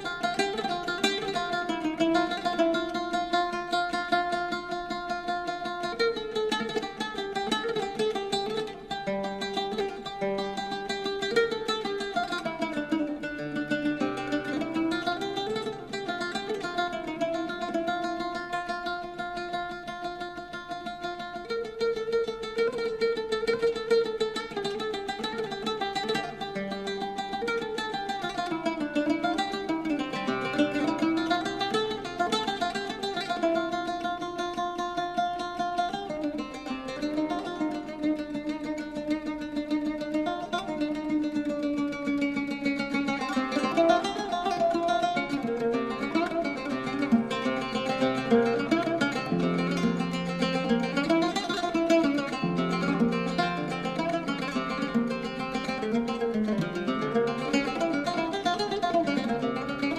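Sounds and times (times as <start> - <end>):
solo oud plucked melody: 0.0 - 59.9.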